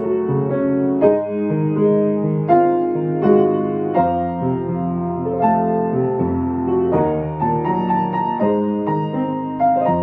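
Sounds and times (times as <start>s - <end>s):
grand piano chords: 0.0s - 10.0s.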